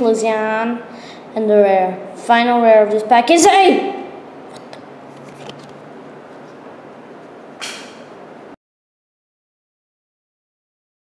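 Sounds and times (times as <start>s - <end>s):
cards rustling: 5.1s - 5.8s.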